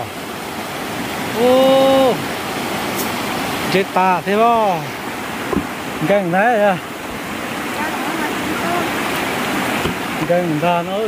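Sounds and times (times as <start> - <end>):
stream rushing over stones: 0.0 - 11.0.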